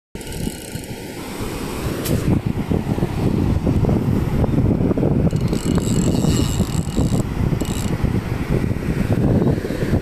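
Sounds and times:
surf washing at water's edge: 0.2 - 10.0
wind rumbling on microphone: 0.2 - 10.0.

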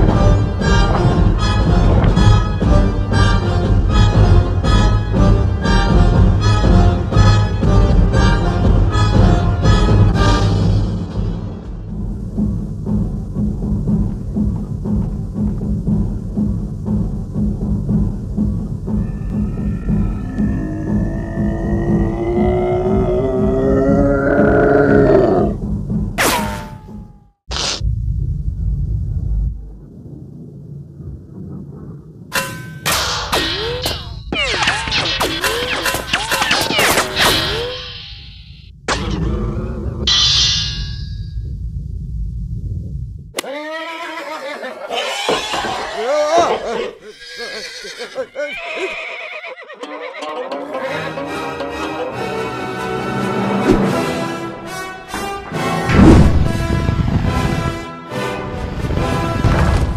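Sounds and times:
pounding low drum beat: 0.0 - 26.2
loud roaring tone: 18.9 - 25.6
horse whinnying: 43.4 - 51.1.

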